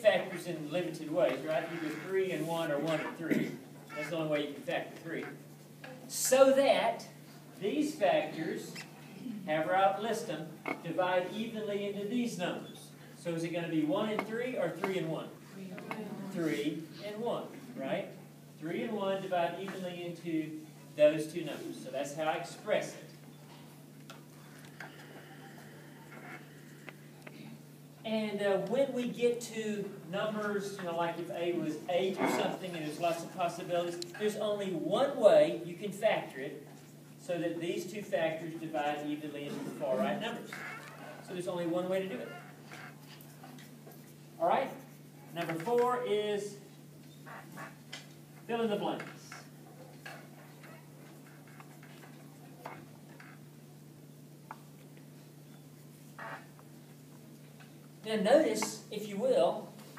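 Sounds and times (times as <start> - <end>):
projector hum: 0.0 - 59.9.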